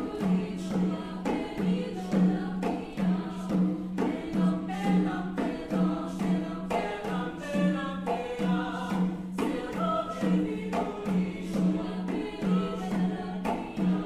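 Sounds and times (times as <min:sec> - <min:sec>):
choir singing: 0:00.0 - 0:14.0.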